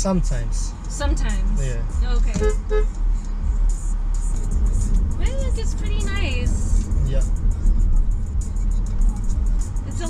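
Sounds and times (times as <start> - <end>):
background music with beat: 0.0 - 10.0
car engine and road rumble: 0.0 - 10.0.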